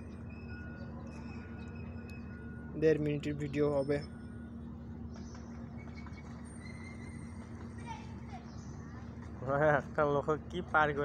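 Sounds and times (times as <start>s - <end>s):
diesel engine droning: 0.0s - 11.0s.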